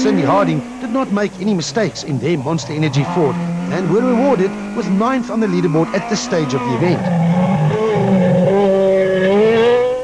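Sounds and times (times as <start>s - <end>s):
car engine at high revs: 0.0s - 10.0s.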